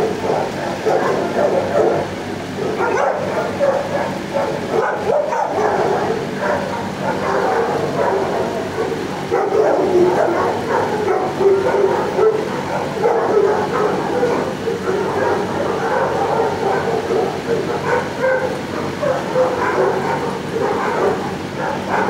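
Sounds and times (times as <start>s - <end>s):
dogs barking and yipping: 0.0s - 22.0s
steady low hum: 0.0s - 22.0s.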